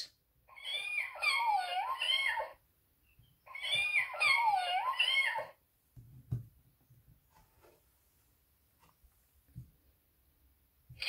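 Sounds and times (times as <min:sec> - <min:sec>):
recorded cat meowing from speaker: 0:00.5 - 0:02.6.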